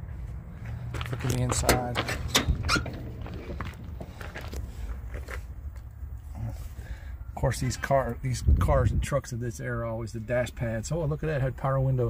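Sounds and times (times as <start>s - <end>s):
low rumble: 0.0s - 6.2s.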